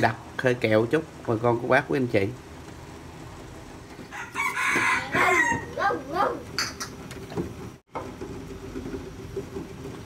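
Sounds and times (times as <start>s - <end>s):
rooster crowing: 4.1s - 5.7s.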